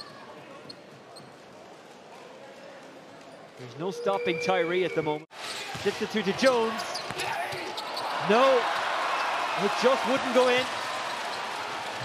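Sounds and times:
faint arena voices: 0:00.0 - 0:12.0.

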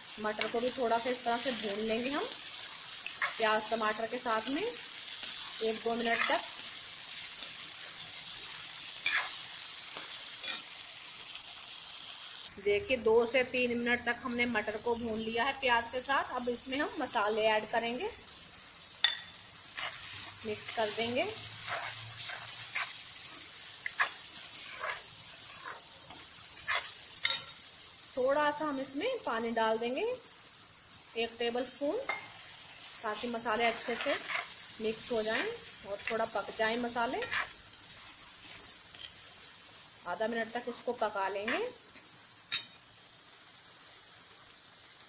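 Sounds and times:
vegetables sizzling in oil: 0:00.0 - 0:45.0
spatula scraping a pan: 0:01.4 - 0:08.0, 0:09.0 - 0:10.7, 0:19.7 - 0:27.6, 0:33.4 - 0:39.2
metal spatula clinking on pan: 0:19.0 - 0:19.4, 0:25.4 - 0:27.6, 0:37.2 - 0:37.5, 0:42.5 - 0:42.8.

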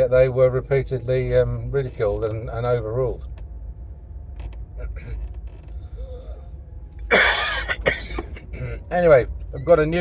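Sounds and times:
car cabin rumble: 0:00.0 - 0:10.0
man coughing: 0:07.1 - 0:08.9.

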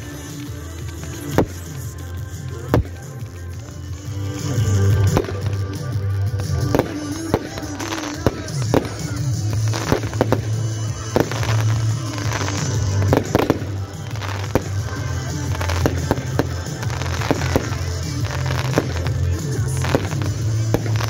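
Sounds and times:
fireworks bangs: 0:00.0 - 0:21.0
music playing: 0:00.0 - 0:21.0.

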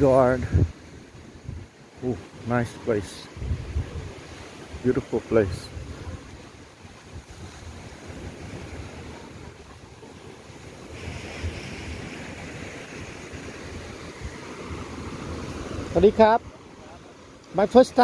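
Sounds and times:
wind buffeting microphone: 0:00.0 - 0:16.8
sea surf on sandy beach: 0:00.0 - 0:18.0.

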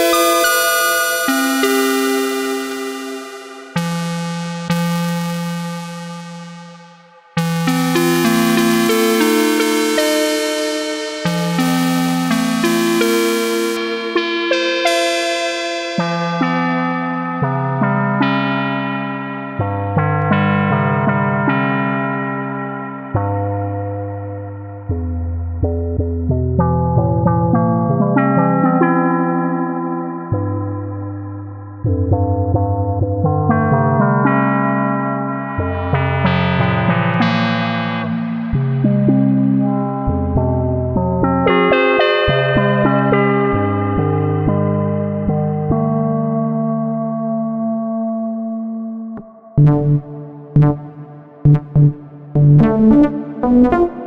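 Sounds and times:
buzzy synthesizer notes: 0:00.0 - 0:18.4, 0:35.6 - 0:39.0, 0:49.2 - 0:54.0
low bass notes: 0:23.5 - 0:28.2, 0:49.2 - 0:54.0.

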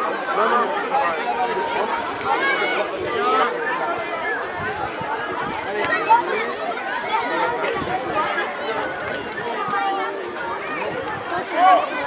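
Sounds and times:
children calling and shouting: 0:00.0 - 0:12.0
loud shout: 0:09.6 - 0:12.0.

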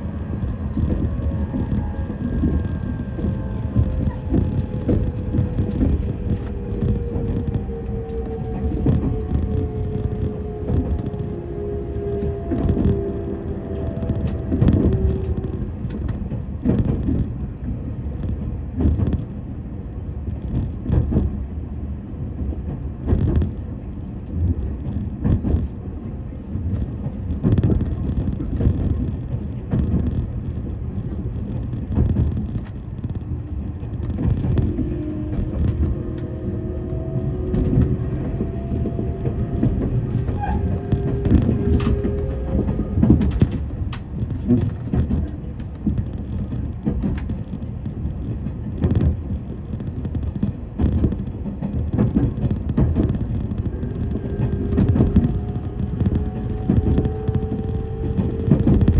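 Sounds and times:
steady whine: 0:00.0 - 0:19.5, 0:26.3 - 0:58.9
train wheels rumbling on rail: 0:00.0 - 0:58.9.

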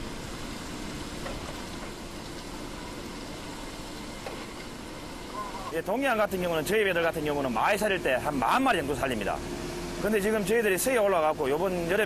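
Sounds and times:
boat engine rumble: 0:00.0 - 0:12.0
faint steady hum: 0:00.0 - 0:12.0.

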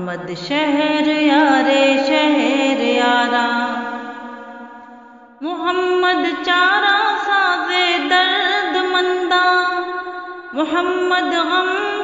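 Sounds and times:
person singing unaccompanied: 0:10.6 - 0:12.0.

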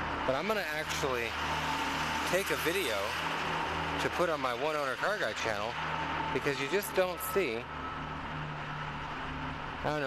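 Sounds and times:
parking garage hum: 0:00.0 - 0:10.0
man speaking: 0:00.3 - 0:01.4, 0:02.3 - 0:03.2, 0:04.0 - 0:05.8, 0:06.4 - 0:07.7.

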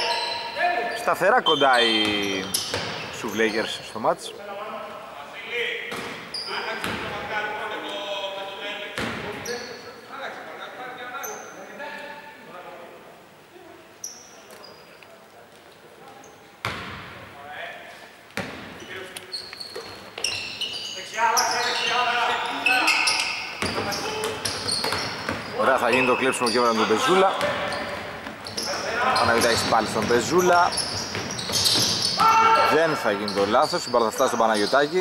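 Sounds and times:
sneaker squeaks on hardwood: 0:00.0 - 0:03.8, 0:05.9 - 0:07.1, 0:09.0 - 0:09.9, 0:14.0 - 0:15.0, 0:18.4 - 0:35.0
basketball bouncing: 0:02.6 - 0:03.0, 0:09.0 - 0:09.3, 0:23.6 - 0:25.5, 0:29.2 - 0:32.2
players' voices calling out: 0:20.4 - 0:35.0.

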